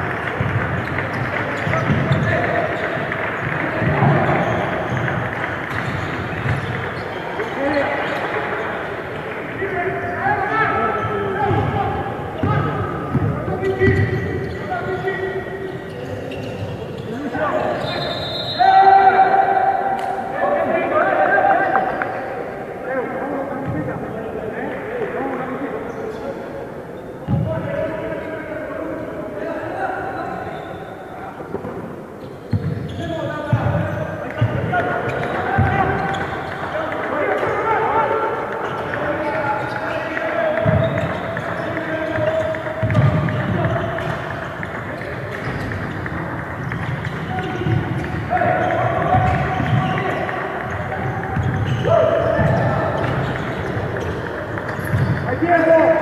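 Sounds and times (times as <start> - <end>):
basketball bouncing on court floor: 0.0 - 7.5, 12.4 - 14.6, 27.2 - 27.5, 32.5 - 37.5, 38.6 - 55.4
echoing calling and talk: 0.0 - 56.0
basketball bouncing on floor: 40.6 - 41.7, 42.4 - 55.3.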